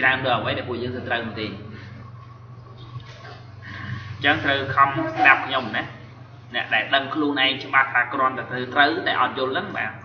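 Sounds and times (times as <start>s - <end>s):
faint high whine: 0.0s - 10.0s
low electrical hum: 0.0s - 10.0s.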